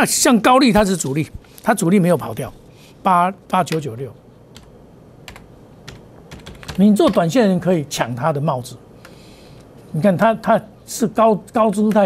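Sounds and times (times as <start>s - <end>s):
man speaking: 0.0s - 4.2s, 6.8s - 8.8s, 9.9s - 12.0s
computer keyboard keystrokes: 4.5s - 7.2s.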